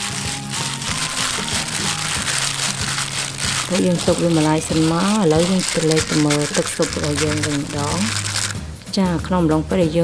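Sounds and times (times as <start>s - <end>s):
plastic glove crinkling: 0.0s - 8.6s
background music: 0.0s - 10.0s.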